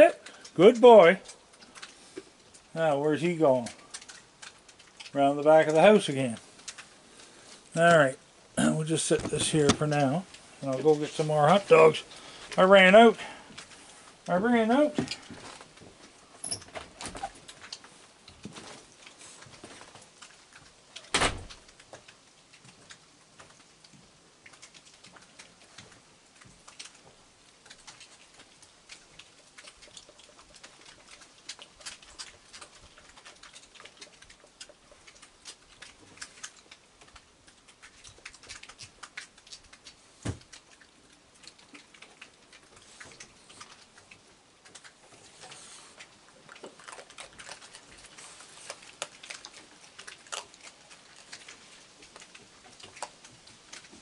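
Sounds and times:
animals crunching dry kibble: 0.0 - 54.0.

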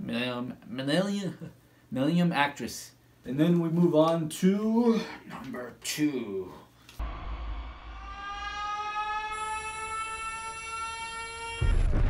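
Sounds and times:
deep low rumble: 7.0 - 9.6
long pitched tone: 7.0 - 12.0.

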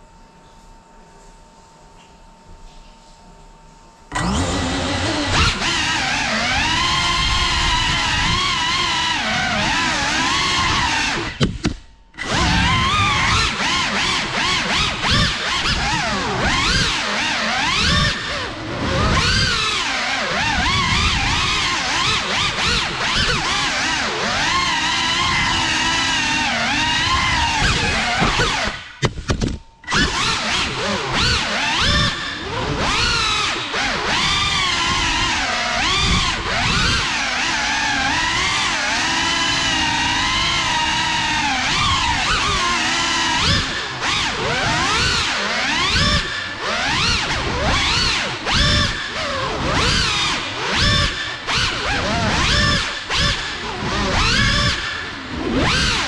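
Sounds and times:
short sharp motor blips: 4.1 - 19.8
drone motors whining: 4.1 - 56.0.

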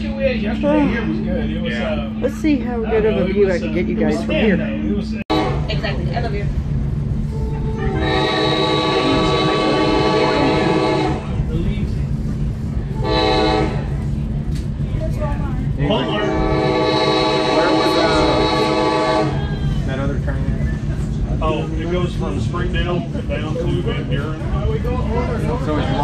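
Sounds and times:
train car rumble: 0.0 - 26.0
train air horn: 5.3 - 5.9, 7.4 - 11.4, 12.9 - 14.0, 15.9 - 19.6.

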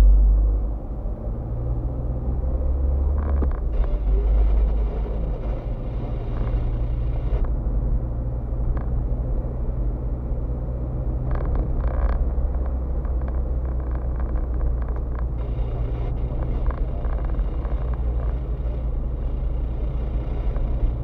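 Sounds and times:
car engine and road hum: 0.0 - 21.0.

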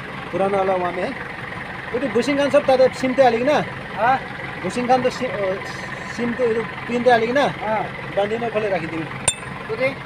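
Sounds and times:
men talking: 0.3 - 1.2, 1.9 - 10.0.

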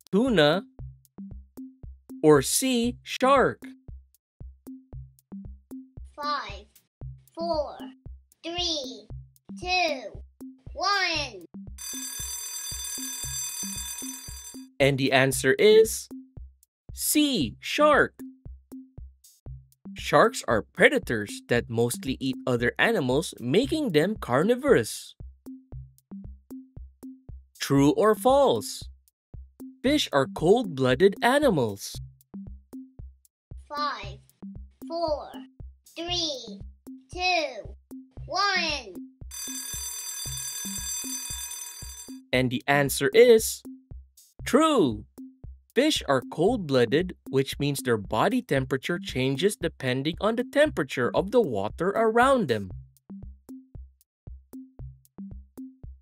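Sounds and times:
children's music with bass beat: 4.4 - 11.9, 13.2 - 16.2, 19.5 - 24.9, 26.6 - 29.0, 29.6 - 41.0, 42.3 - 56.0
alarm clock ringing: 11.8 - 14.8, 39.3 - 42.3.

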